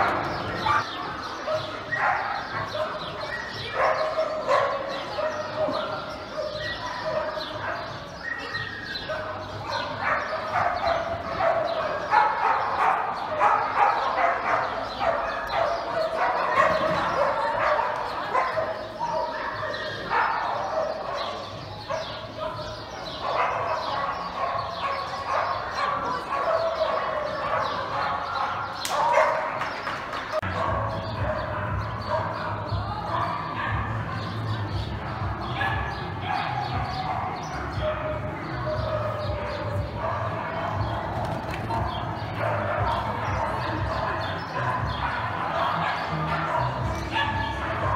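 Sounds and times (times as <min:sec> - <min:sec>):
dogs barking: 0:00.0 - 0:47.9
people's voices: 0:00.0 - 0:47.9.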